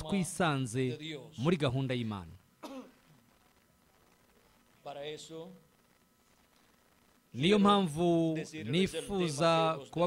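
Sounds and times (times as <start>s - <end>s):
man speaking: 0.0s - 2.4s
throat-clearing cough: 2.6s - 3.2s.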